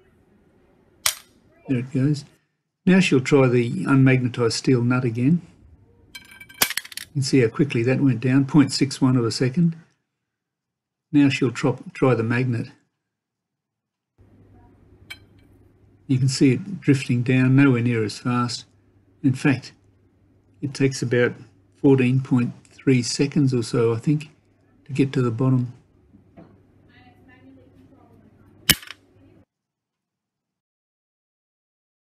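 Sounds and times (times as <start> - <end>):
magnet rattling: 6.2 - 7.1, 28.7 - 29.0
light metallic clink: 15.1 - 15.5
magnet landing with a clack: 28.7 - 29.0.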